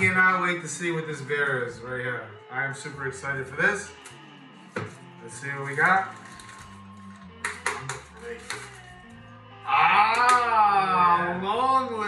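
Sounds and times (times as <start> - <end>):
background music: 0.0 - 12.0
paper bag crinkling: 5.5 - 7.2.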